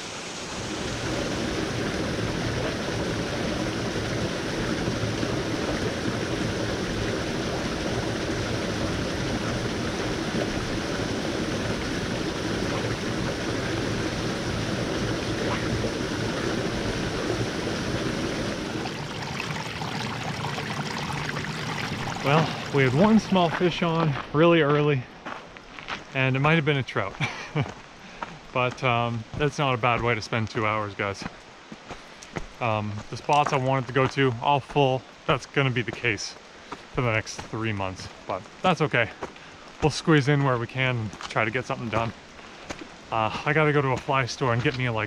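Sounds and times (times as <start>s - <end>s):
river water rushing: 0.0s - 24.3s.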